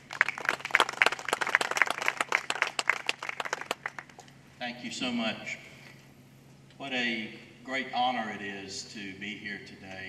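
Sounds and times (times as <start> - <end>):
audience clapping: 0.0 - 4.3.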